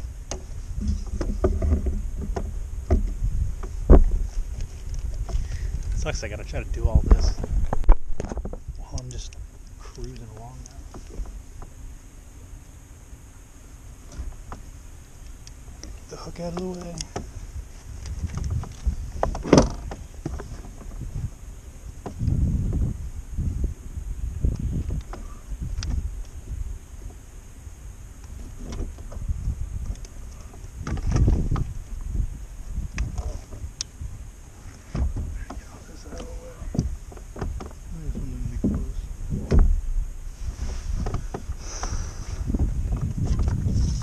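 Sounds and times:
gear thumping against plastic kayak: 0:00.3 - 0:06.0, 0:15.8 - 0:21.2, 0:28.3 - 0:31.9, 0:34.6 - 0:39.8, 0:40.9 - 0:44.0.

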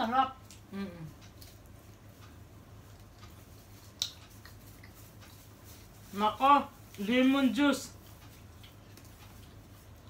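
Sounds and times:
steady low hum: 0:00.0 - 0:10.0
clicks of shrimp being peeled: 0:00.4 - 0:05.6.

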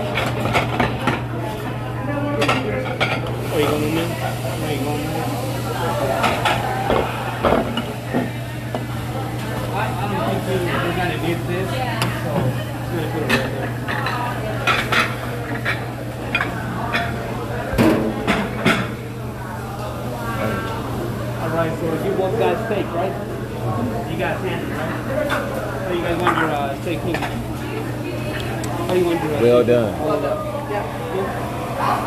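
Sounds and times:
tableware clinking: 0:25.2 - 0:27.4.

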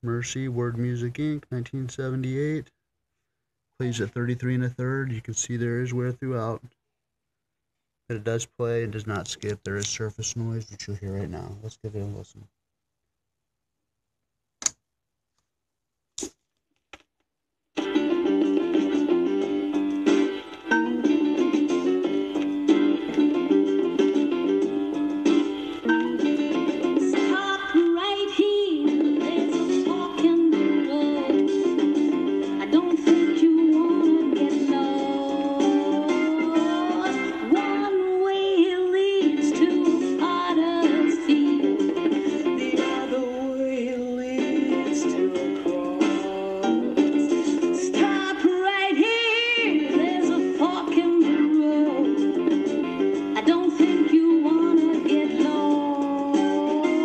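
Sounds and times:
gospel soul record playing: 0:17.8 - 0:57.0.

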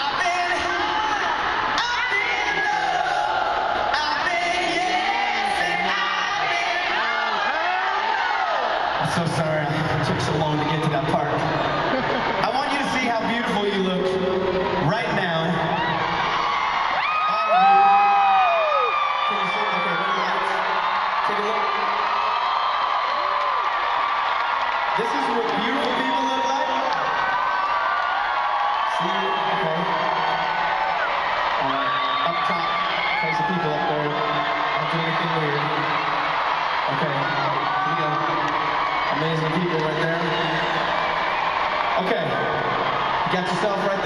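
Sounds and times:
crowd cheering and whooping: 0:00.0 - 0:44.0.

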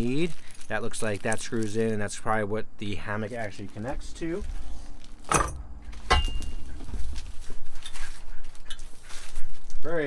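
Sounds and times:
metal pole knocking and ringing: 0:05.3 - 0:06.7.

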